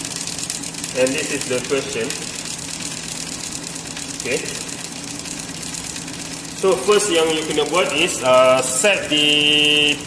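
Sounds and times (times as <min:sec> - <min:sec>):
mechanical hum: 0:00.0 - 0:10.0
rapid fine ticking: 0:00.0 - 0:10.0.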